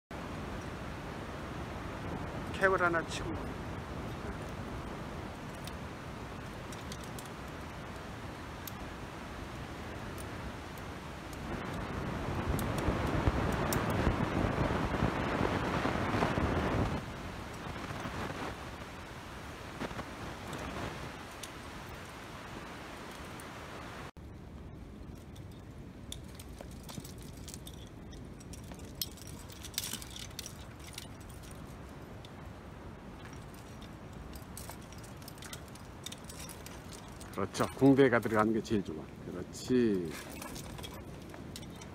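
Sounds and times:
steady rushing noise: 0.1 - 41.9
metal climbing gear clinking: 3.9 - 9.0, 25.0 - 38.9, 39.8 - 41.9.

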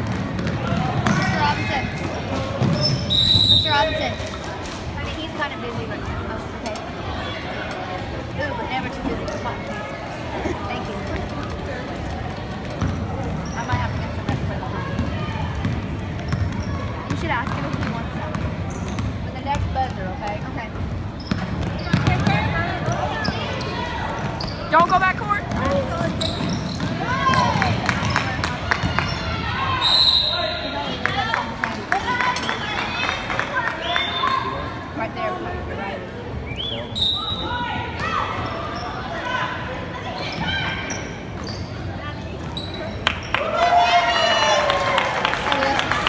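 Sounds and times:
referee's whistle blast: 2.9 - 3.9, 29.8 - 30.6
spectators' voices and shouts: 21.5 - 41.3.

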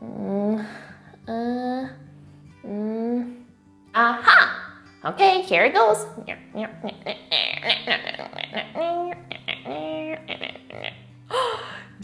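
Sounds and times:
soft background music: 0.0 - 12.0
woman making wordless vocal sounds: 2.6 - 4.6, 6.2 - 12.0.

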